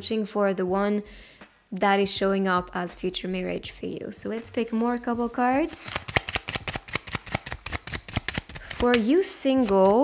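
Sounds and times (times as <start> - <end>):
cards being shuffled: 5.7 - 10.0.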